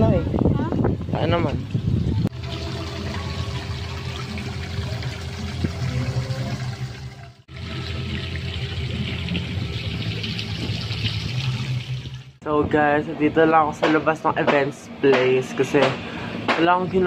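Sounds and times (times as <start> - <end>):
fountain water splashing: 2.3 - 12.4.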